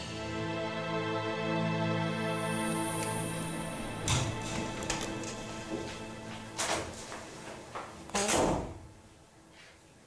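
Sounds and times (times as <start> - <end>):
soft background music: 0.0 - 8.1.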